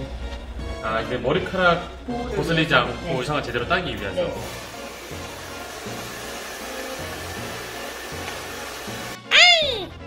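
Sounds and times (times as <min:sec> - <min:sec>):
background music: 0:00.0 - 0:10.0
hair dryer blowing: 0:04.4 - 0:09.2.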